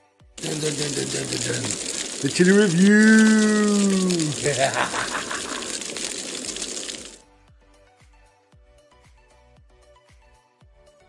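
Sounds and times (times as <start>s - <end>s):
loud crackling hiss: 0.4s - 7.2s.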